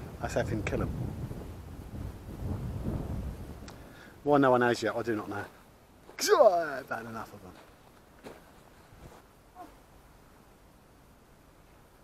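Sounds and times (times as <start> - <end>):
wind buffeting microphone: 0.0 - 5.6
faint click: 3.6 - 3.8.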